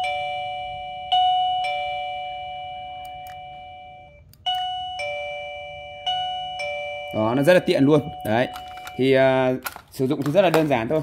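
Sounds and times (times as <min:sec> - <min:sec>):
two-tone doorbell chime: 0:00.0 - 0:09.5.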